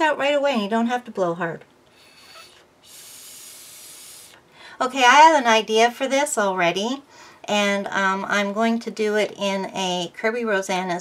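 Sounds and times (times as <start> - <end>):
airy hiss of blow pen: 2.0 - 4.4.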